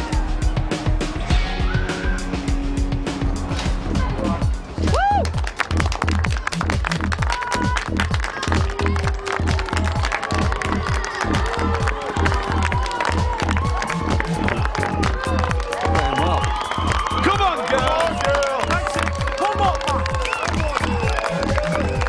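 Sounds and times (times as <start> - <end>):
music with driving beat: 0.0 - 22.0.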